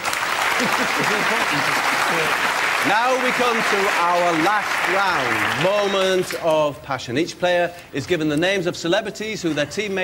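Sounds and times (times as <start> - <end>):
audience applauding: 0.0 - 6.4
audience laughing: 0.4 - 2.6
man speaking: 2.8 - 10.0.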